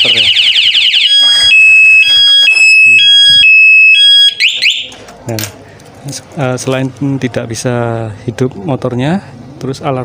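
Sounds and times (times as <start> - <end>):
motorcycle alarm siren: 0.0 - 5.0.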